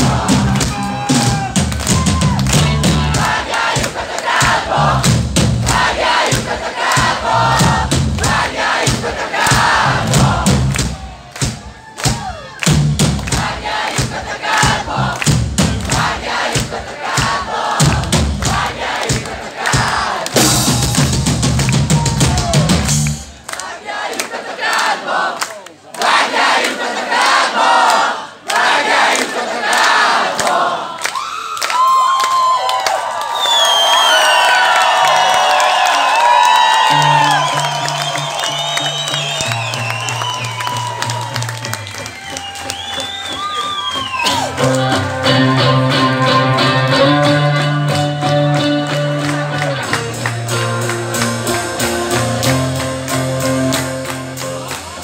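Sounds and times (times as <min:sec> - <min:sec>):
crowd cheering and whistling: 0:00.0 - 0:03.4, 0:09.4 - 0:13.3, 0:20.4 - 0:23.5, 0:30.9 - 0:55.0
live rock band: 0:00.0 - 0:23.4, 0:36.7 - 0:55.0
loud drum hits: 0:04.4 - 0:23.1.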